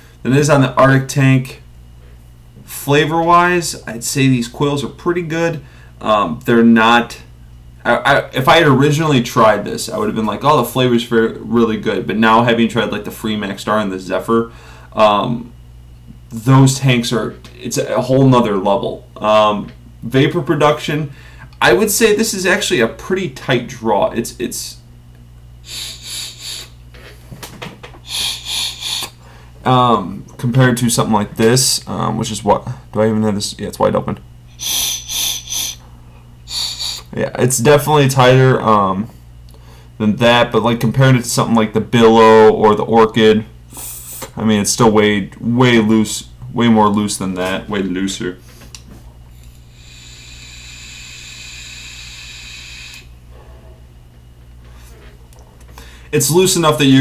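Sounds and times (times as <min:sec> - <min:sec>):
air hissing through vape tank: 0:25.7 - 0:26.8, 0:28.0 - 0:29.2, 0:34.5 - 0:35.8, 0:36.5 - 0:37.1, 0:49.4 - 0:53.1.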